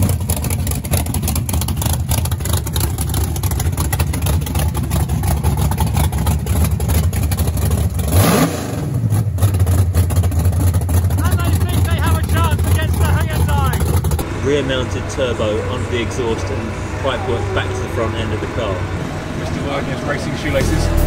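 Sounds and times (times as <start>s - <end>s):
engine revving: 0.0s - 21.0s
pickup engine idling: 0.0s - 21.0s.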